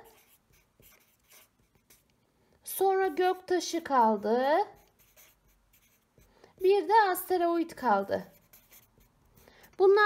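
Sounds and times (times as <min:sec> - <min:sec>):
marker pen writing on paper: 0:00.0 - 0:02.2, 0:03.1 - 0:06.8, 0:08.0 - 0:09.8.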